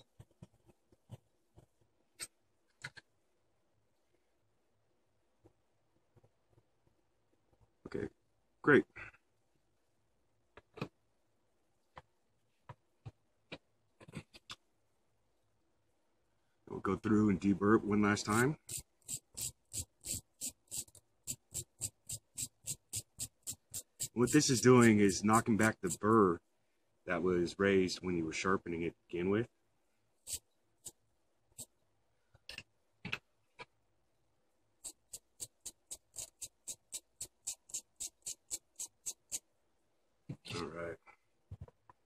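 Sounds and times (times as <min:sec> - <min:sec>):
wire brush scratching metal blade: 0:18.2 - 0:26.1, 0:30.3 - 0:31.0, 0:34.8 - 0:39.4.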